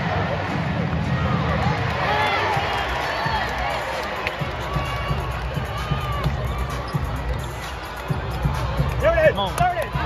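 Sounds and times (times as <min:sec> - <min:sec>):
arena crowd noise: 0:00.0 - 0:10.0
music: 0:00.0 - 0:10.0.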